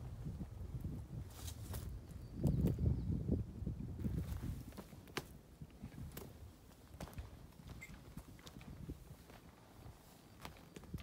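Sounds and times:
footsteps on dry leaves and twigs: 1.3s - 2.0s, 4.0s - 11.0s.

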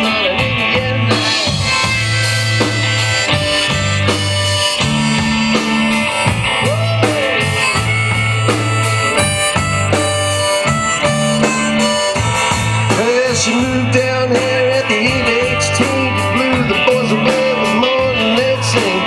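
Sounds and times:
rock band playing: 0.0s - 19.0s
wavering lead melody: 1.1s - 18.5s.

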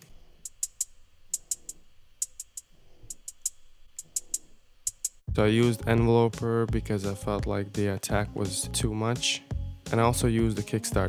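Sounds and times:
hi-hat loop ticks: 0.0s - 11.0s.

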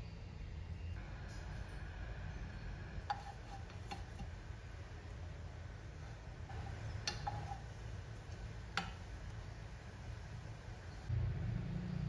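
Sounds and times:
wooden spoon tapping frying pan: 8.7s - 9.1s.

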